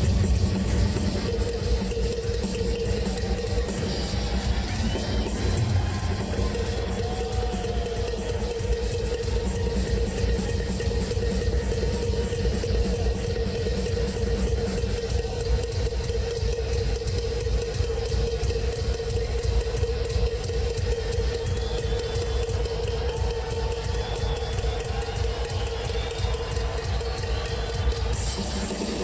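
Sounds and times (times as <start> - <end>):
rock drum solo: 0.0 - 29.0.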